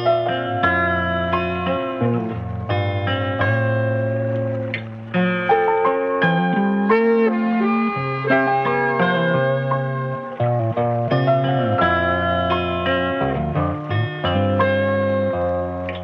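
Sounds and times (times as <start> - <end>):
bass line: 0.0 - 16.0
plucked guitar-like melody: 0.0 - 16.0
sustained chords: 0.0 - 16.0.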